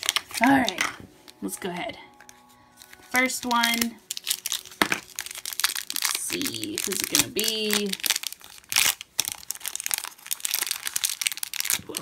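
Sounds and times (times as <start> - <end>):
plastic wrapper crinkling: 0.0 - 12.0.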